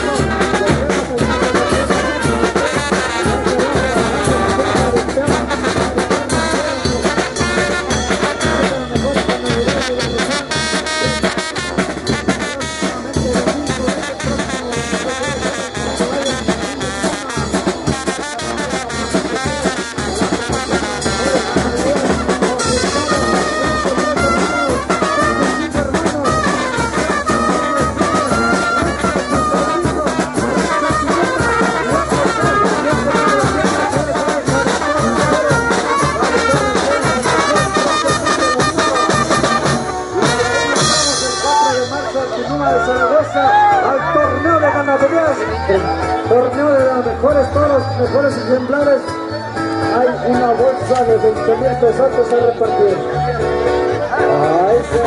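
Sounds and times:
brass band playing lively tune: 0.0s - 55.0s.

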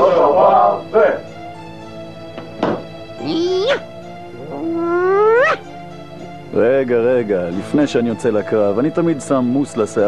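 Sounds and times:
background music: 0.0s - 10.0s
rising yowling cries: 3.2s - 5.7s.

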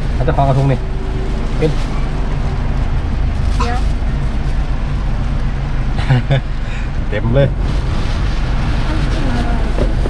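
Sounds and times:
car engine idling: 0.0s - 10.0s
person speaking: 3.6s - 3.9s.

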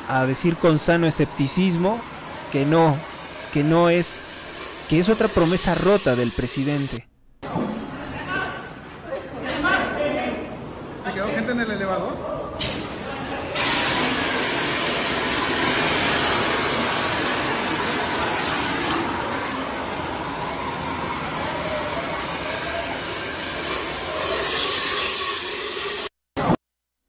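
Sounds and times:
loud hissing rush: 0.0s - 7.0s, 13.6s - 26.1s.

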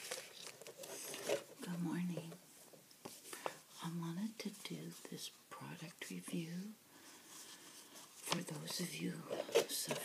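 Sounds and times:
woman speaking softly: 1.6s - 2.4s, 3.8s - 6.8s, 8.2s - 10.0s.

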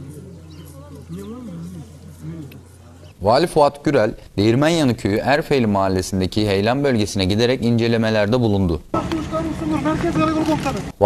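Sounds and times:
faint voices talking: 0.0s - 3.2s.

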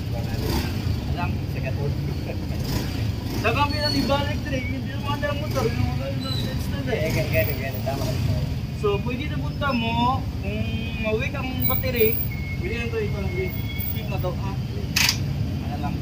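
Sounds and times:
people talking: 0.0s - 2.7s, 3.4s - 15.0s.

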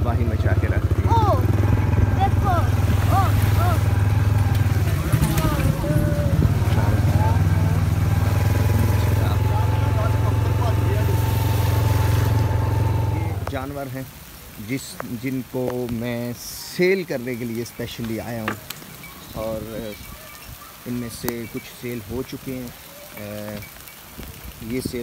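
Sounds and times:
small motorcycle engine idling: 0.0s - 13.5s
people's voices: 0.0s - 25.0s.

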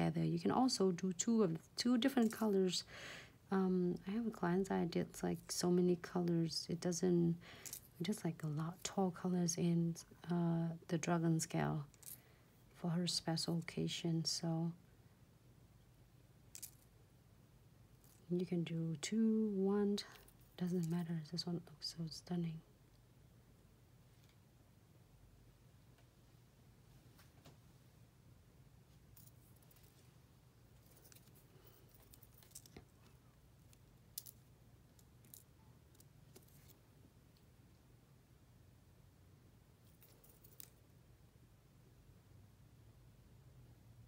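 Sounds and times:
low room hum: 0.0s - 44.0s.

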